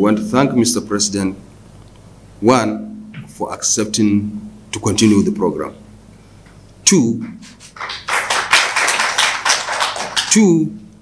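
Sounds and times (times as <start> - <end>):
applause: 7.6 - 10.5.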